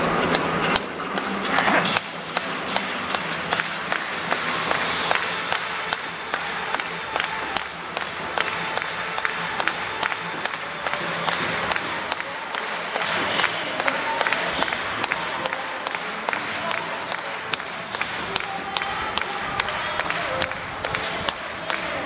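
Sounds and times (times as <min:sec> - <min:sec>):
music over public address: 0:00.0 - 0:22.0
rhythmic clapping: 0:00.0 - 0:22.0
stadium crowd noise: 0:00.0 - 0:22.0.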